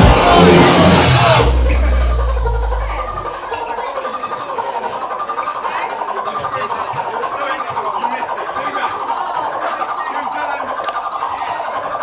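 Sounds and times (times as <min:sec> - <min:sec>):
fast-pulsing synth loop: 0:00.0 - 0:12.0.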